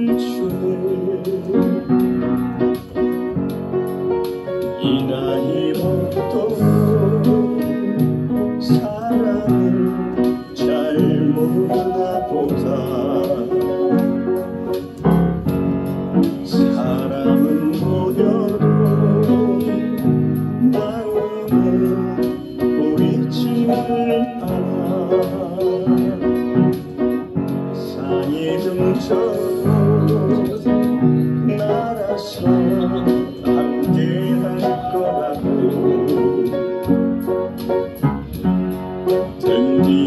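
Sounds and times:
person singing with vibrato: 0.0 - 2.3, 4.7 - 14.3, 16.3 - 27.0, 27.7 - 36.9, 39.2 - 40.0
piano ballad accompaniment: 0.0 - 40.0.

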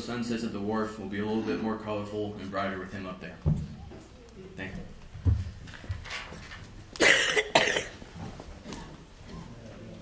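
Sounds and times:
loud coughs: 7.0 - 8.0.

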